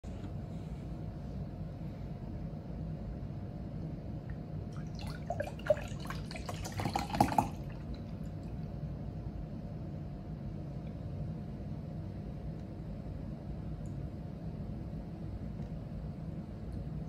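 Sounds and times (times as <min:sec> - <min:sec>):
steady low hum: 0:00.0 - 0:17.0
milk pouring into a glass: 0:04.8 - 0:08.3.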